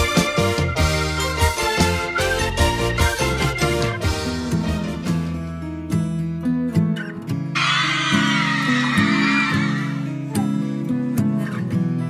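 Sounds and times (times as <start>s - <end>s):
pop song with guitar: 0.0s - 12.0s
crowd screaming and cheering: 7.6s - 10.5s.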